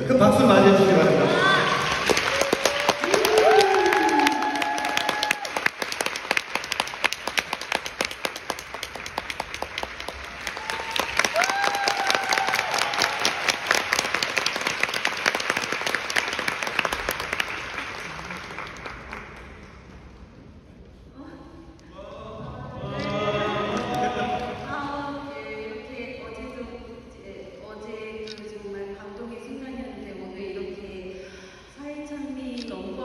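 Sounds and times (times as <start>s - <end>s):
audience applauding: 1.3s - 20.0s.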